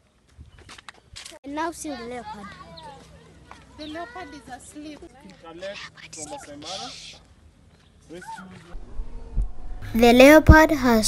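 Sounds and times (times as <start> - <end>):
low rumble: 8.8 - 10.8.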